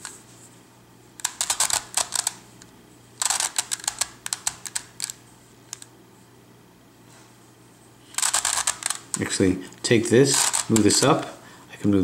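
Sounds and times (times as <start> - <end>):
plastic puzzle clicking: 1.2 - 2.4, 3.2 - 5.9, 8.1 - 9.3, 10.3 - 11.2.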